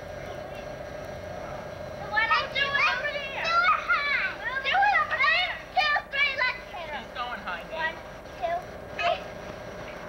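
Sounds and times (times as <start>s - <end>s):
children shouting in play: 2.0s - 6.7s.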